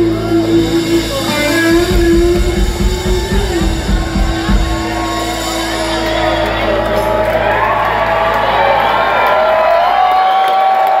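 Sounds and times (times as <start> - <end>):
ringing electric guitar: 0.0 - 10.0
live rock band: 0.0 - 10.9
crowd cheering and whooping: 1.3 - 11.0.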